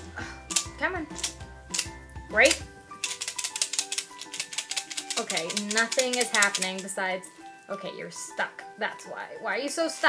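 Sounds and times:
candies rattling in plastic tube: 0:01.1 - 0:07.0.

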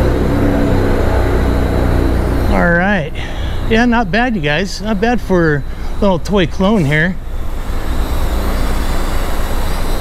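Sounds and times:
low rumble: 0:00.0 - 0:09.6.

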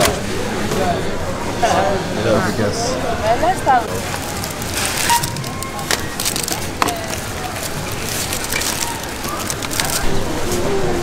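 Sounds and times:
plastic packaging rustling: 0:03.9 - 0:10.8.

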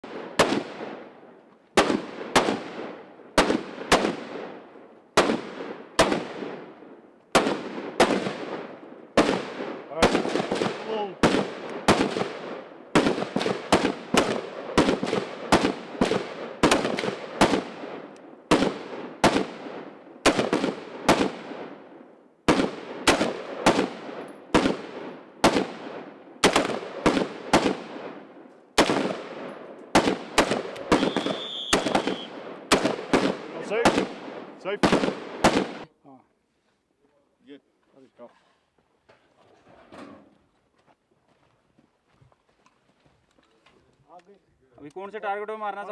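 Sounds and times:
rifle shots with echo: 0:00.0 - 0:01.2, 0:01.8 - 0:35.9.

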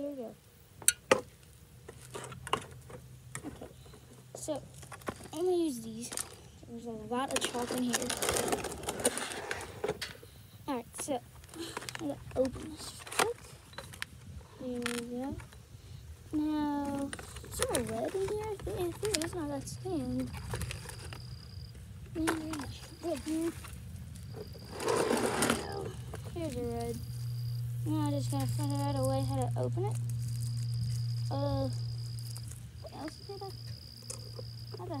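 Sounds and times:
child speaking: 0:00.0 - 0:00.4, 0:04.4 - 0:04.7, 0:05.3 - 0:08.5, 0:10.6 - 0:13.4, 0:14.6 - 0:15.4, 0:16.3 - 0:20.4, 0:22.1 - 0:23.6, 0:25.4 - 0:27.0, 0:27.8 - 0:30.0, 0:31.3 - 0:31.8, 0:32.8 - 0:33.6, 0:34.8 - 0:35.0
low steady rumble: 0:00.0 - 0:35.0
cardboard box rustling: 0:07.3 - 0:10.0, 0:22.2 - 0:23.7, 0:24.4 - 0:26.9
thin high whine: 0:22.4 - 0:35.0.

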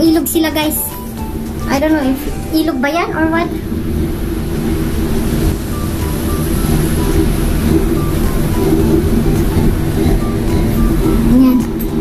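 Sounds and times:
cable car cabin rumble and hum: 0:00.0 - 0:12.0
music with short high notes: 0:00.0 - 0:12.0.

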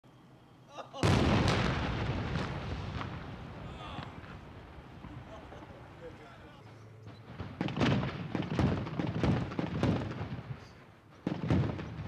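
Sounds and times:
tank gun blast: 0:01.0 - 0:05.5, 0:07.1 - 0:12.0.

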